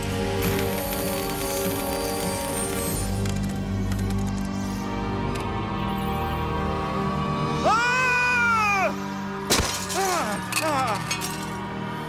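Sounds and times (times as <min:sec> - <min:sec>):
dramatic background music: 0:00.0 - 0:12.0
man screaming: 0:07.6 - 0:09.0
glass mirror shattering: 0:09.5 - 0:11.6
glass pieces tinkling: 0:09.5 - 0:11.7.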